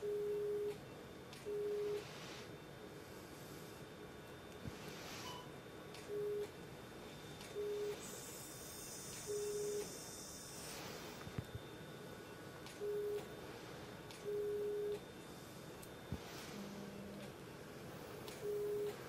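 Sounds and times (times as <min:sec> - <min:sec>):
electrosurgical generator beeps: 0:00.0 - 0:02.1, 0:05.2 - 0:13.4, 0:14.1 - 0:15.6, 0:18.3 - 0:19.0.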